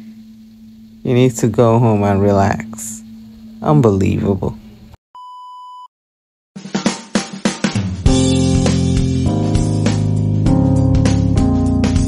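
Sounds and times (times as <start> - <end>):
test-tone beep: 5.2 - 5.9.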